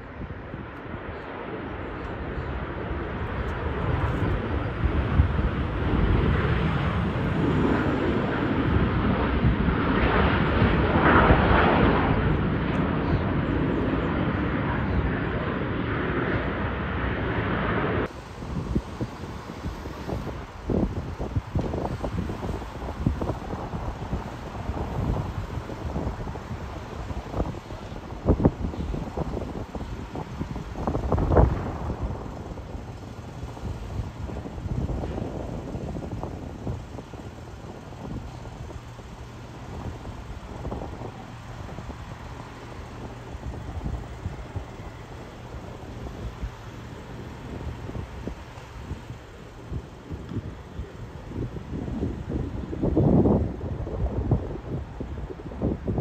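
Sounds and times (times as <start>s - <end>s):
jet engine rumble: 0.0s - 56.0s
wind gusts on microphone: 0.0s - 56.0s.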